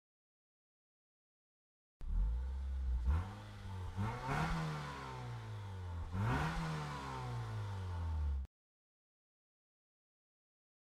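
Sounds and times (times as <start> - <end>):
vehicle engine revving: 2.0 - 8.5.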